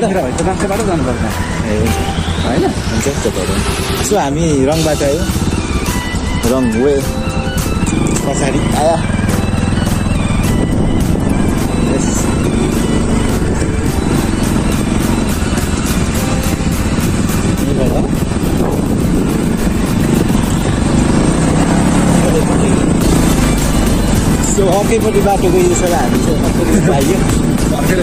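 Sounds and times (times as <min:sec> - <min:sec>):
motorcycle engine running: 0:00.0 - 0:28.0
song with steady beat: 0:04.2 - 0:18.6
wind noise: 0:09.9 - 0:24.8.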